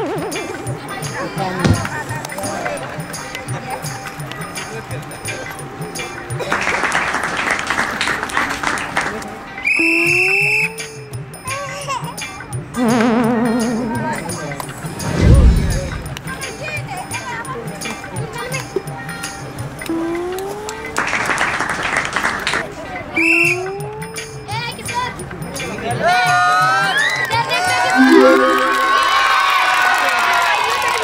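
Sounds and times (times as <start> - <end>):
crowd applauding: 6.4 - 9.3, 28.0 - 31.0
crowd clapping: 6.4 - 9.3, 21.0 - 22.6
background music: 28.0 - 29.7
tone gliding upward: 28.0 - 29.8.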